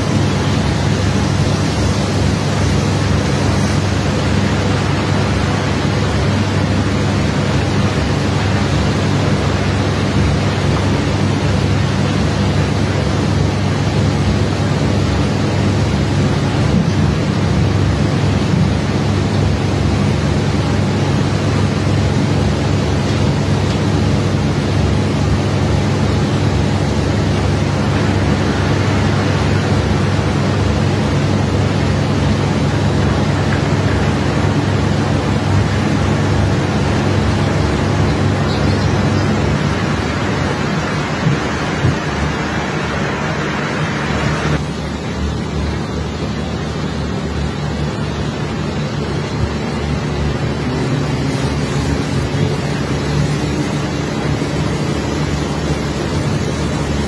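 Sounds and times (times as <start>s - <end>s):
machinery engine drone: 0.0s - 57.0s.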